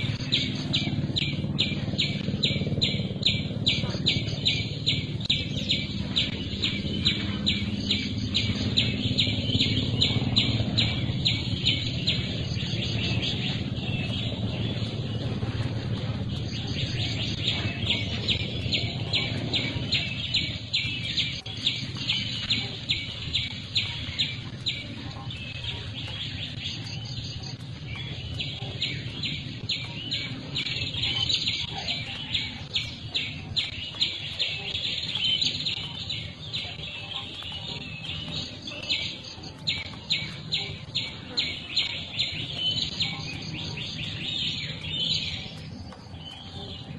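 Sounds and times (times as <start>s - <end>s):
bird chirping: 0.0s - 46.9s
low background rumble: 0.0s - 46.9s.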